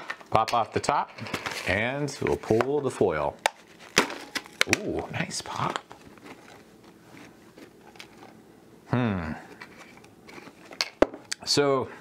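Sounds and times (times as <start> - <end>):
person humming hmm: 8.9 - 9.5.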